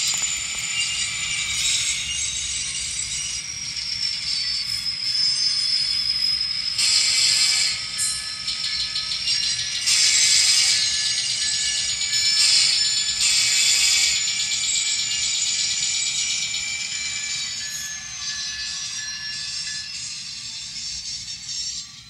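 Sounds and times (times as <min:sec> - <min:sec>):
model locomotive diesel sound: 0:00.0 - 0:22.0.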